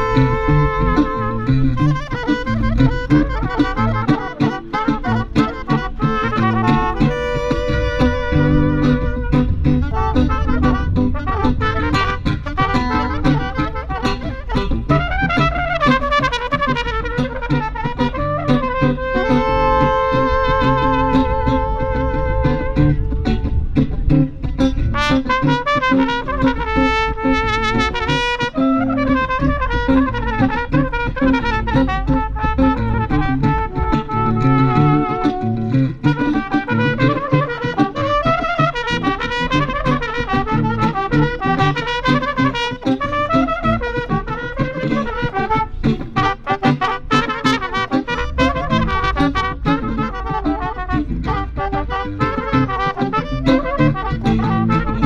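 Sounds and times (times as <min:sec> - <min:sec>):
long held horn notes: 0:00.0 - 0:55.0
low rhythmic backing: 0:00.0 - 0:55.0
trumpet saxophone and guitar tune: 0:00.0 - 0:55.0.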